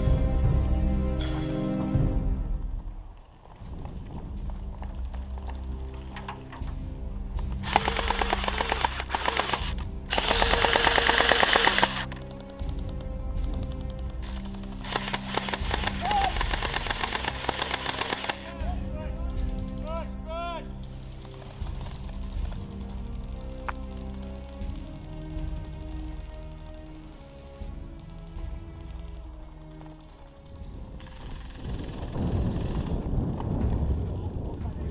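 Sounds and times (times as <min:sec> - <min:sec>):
background music: 0:00.0 - 0:34.9
rapid toy blaster fire: 0:07.6 - 0:12.1, 0:14.8 - 0:18.5.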